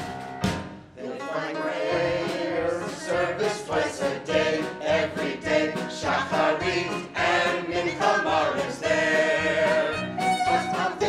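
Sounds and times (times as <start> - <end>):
group singing in chorus: 1.0 - 11.0.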